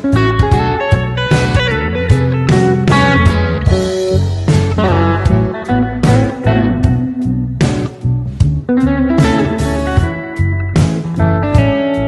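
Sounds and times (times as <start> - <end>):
slide electric guitar blues: 0.0 - 12.0.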